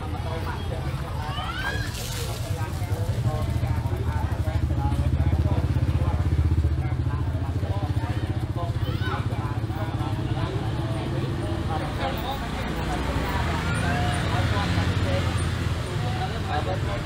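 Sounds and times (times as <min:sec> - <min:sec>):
crowd voices: 0:00.0 - 0:17.0.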